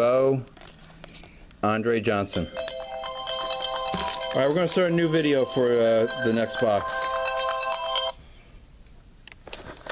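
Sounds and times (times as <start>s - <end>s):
electronic melody: 2.4s - 8.2s.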